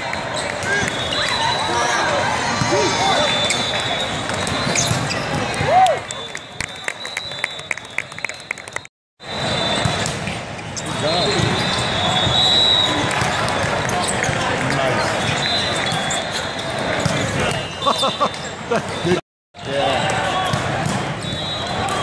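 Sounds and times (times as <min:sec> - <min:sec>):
din of spectators: 0:00.0 - 0:22.0
sneaker squeaks on court: 0:03.2 - 0:05.6, 0:09.6 - 0:12.4, 0:13.2 - 0:19.2.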